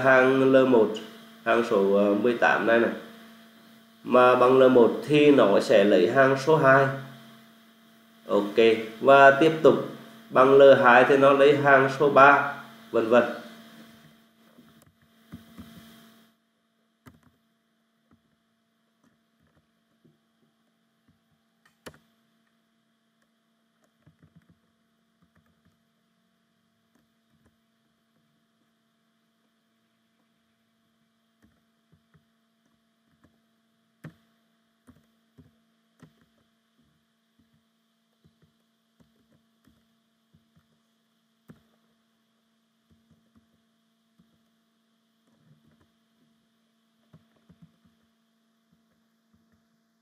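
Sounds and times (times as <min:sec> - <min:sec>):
low electrical hum: 0:00.0 - 0:50.0.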